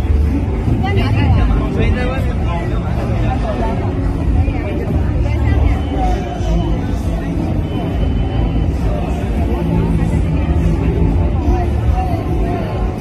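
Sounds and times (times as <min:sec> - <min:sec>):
people chatting: 0:00.0 - 0:13.0.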